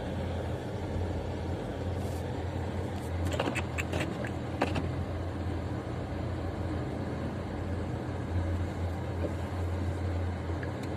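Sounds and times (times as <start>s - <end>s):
car engine hum: 0.0s - 10.9s.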